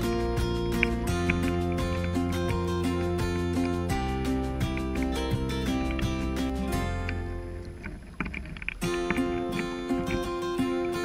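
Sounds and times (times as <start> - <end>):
background guitar music: 0.0 - 11.0
water rushing along a boat hull: 0.0 - 11.0.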